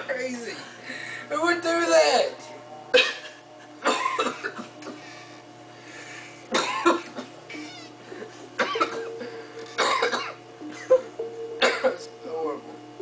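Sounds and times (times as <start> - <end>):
music: 0.4 - 13.0
man coughing and gagging: 2.9 - 5.0, 6.5 - 7.4, 8.6 - 11.0, 11.6 - 12.1.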